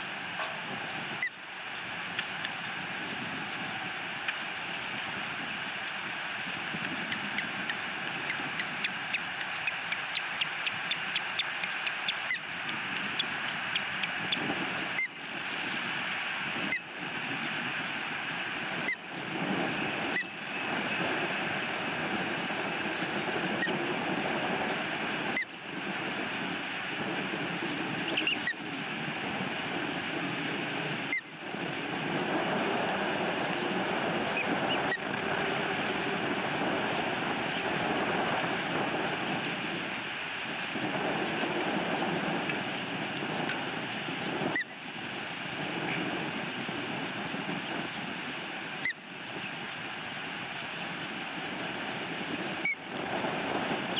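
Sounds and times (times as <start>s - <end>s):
outdoor rushing noise: 0.0s - 48.8s
sharp clicks: 5.8s - 14.5s
run of short ticks: 5.8s - 15.1s.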